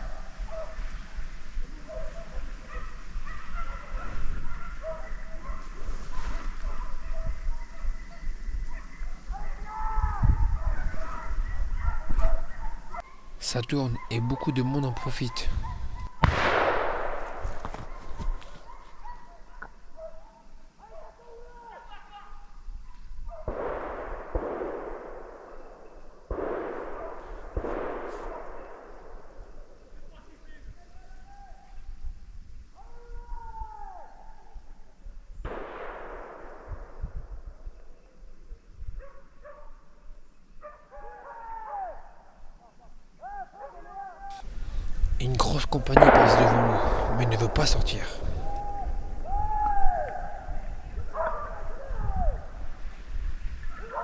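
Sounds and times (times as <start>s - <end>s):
hounds baying: 0.0s - 1.1s, 1.8s - 9.7s, 10.5s - 16.2s, 17.7s - 22.1s, 49.9s - 52.5s
distant rifle shots: 15.4s - 18.4s, 23.4s - 29.9s, 35.5s - 37.4s, 45.3s - 49.1s.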